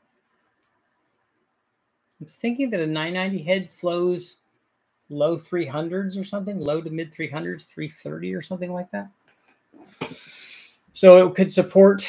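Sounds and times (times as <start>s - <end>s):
speech: 2.1s - 4.4s, 5.1s - 9.2s, 11.0s - 12.0s.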